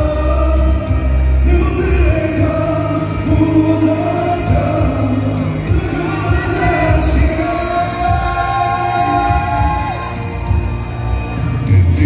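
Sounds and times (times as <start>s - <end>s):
man singing into a microphone: 0.0s - 10.5s, 11.4s - 12.0s
backing music with heavy bass: 0.0s - 12.0s.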